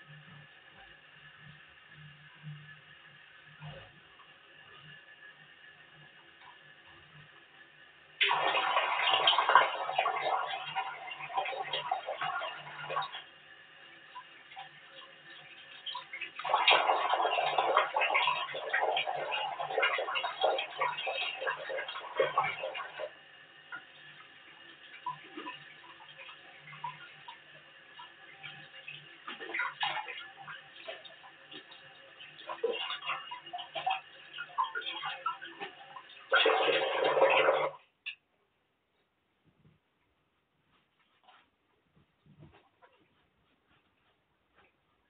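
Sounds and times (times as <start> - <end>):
water splashing at sink: 8.1 - 38.2.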